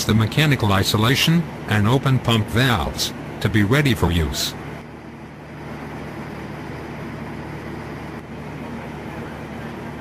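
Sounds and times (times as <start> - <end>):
drilling rig machinery droning: 0.0 - 10.0.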